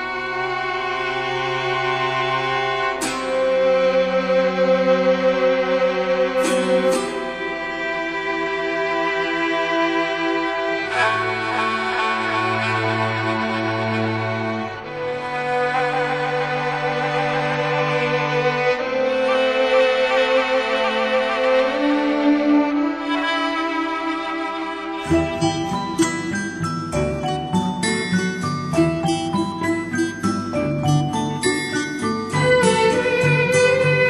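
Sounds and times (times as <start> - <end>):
orchestral string music: 0.0 - 34.0
violin melody with vibrato: 0.0 - 34.0.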